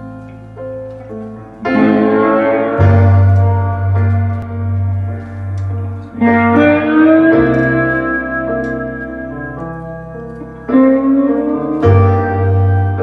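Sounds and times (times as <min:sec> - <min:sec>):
keyboard chords: 0:00.0 - 0:13.0
bass line: 0:01.6 - 0:09.9
electric guitar sliding notes: 0:01.6 - 0:13.0.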